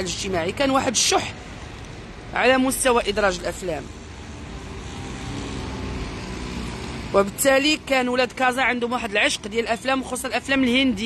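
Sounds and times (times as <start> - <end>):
street traffic rumble: 0.0 - 11.0
vehicle passing: 1.3 - 9.5.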